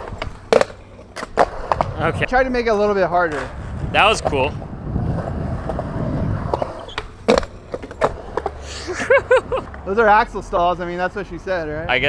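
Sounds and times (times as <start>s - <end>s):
skateboard clacks: 0.0s - 2.1s, 5.2s - 8.6s
skateboard wheels rolling on concrete: 0.0s - 12.0s.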